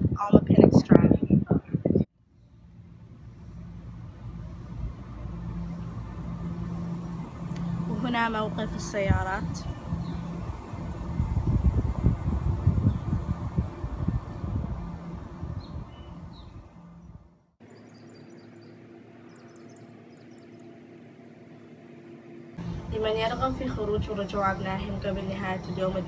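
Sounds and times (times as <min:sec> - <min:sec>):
wind buffeting microphone: 0:00.0 - 0:02.1, 0:02.8 - 0:17.3, 0:22.6 - 0:26.0
steady low hum: 0:00.0 - 0:26.0
birds chirping: 0:01.3 - 0:21.5, 0:22.4 - 0:26.0.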